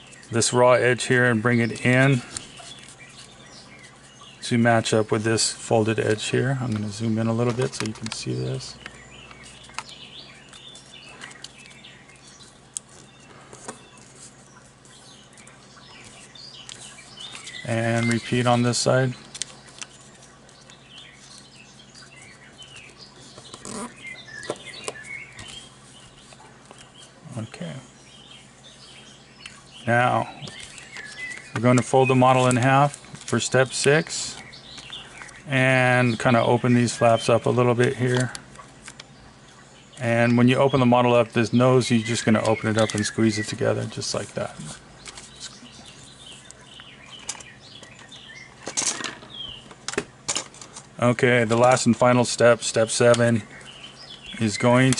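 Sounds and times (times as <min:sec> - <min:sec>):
paper rustling while folded: 0:00.0 - 0:04.2, 0:05.7 - 0:27.5, 0:30.4 - 0:35.4, 0:41.8 - 0:46.6
stiff paper crackling: 0:05.7 - 0:27.4, 0:30.4 - 0:35.4, 0:41.9 - 0:48.8
sharp paper crackle: 0:06.7 - 0:21.5.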